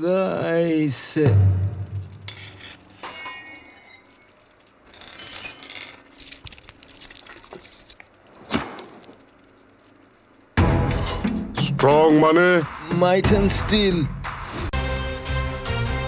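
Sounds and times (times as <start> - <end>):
sharp knock: 1.3 - 2.3
metal ringing scrape: 1.9 - 6.1
steel bar clinking and ringing: 2.3 - 4.3.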